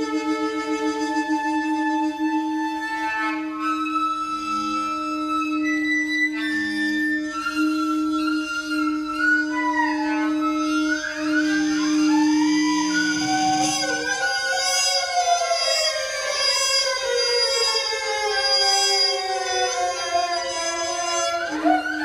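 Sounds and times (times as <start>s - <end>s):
hurdy-gurdy drone: 0.0s - 22.0s
saxophone sliding lines: 0.0s - 22.0s.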